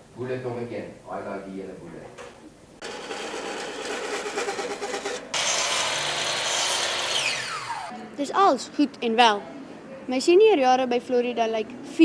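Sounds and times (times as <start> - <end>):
machine whirring: 2.8 - 8.0.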